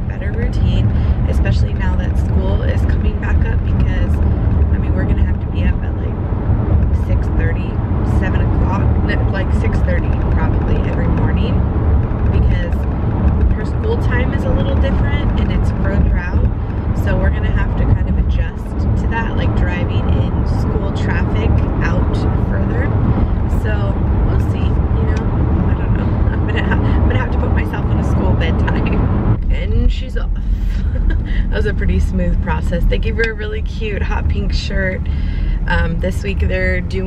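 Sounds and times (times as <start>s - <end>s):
woman talking: 0.0s - 6.2s, 7.0s - 11.6s, 12.3s - 12.8s, 13.4s - 37.0s
car cabin road rumble: 0.0s - 37.0s.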